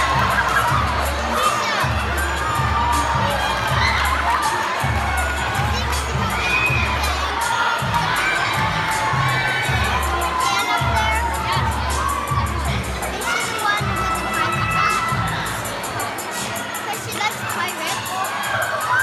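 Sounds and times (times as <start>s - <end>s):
crowd cheering and shouting: 0.0s - 19.0s
dance music bass beat: 0.0s - 19.0s.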